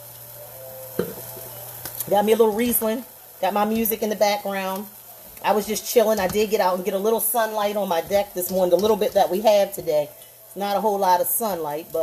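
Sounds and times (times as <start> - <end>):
cabbage sizzling in a pan: 0.0 - 12.0.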